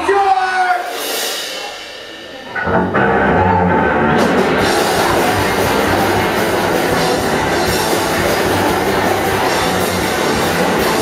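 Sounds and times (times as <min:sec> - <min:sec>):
live rock band playing: 0:00.8 - 0:11.0.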